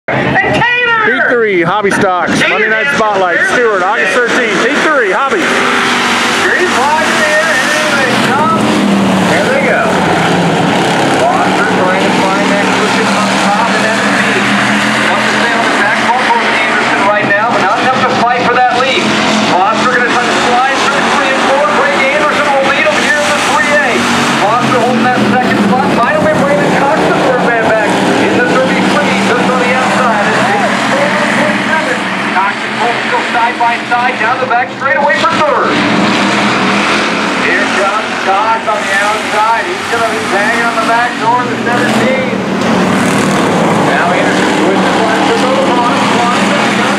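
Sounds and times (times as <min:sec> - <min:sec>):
voices: 0:00.1 - 0:35.9, 0:36.9 - 0:46.9
race car engines droning: 0:00.1 - 0:46.9.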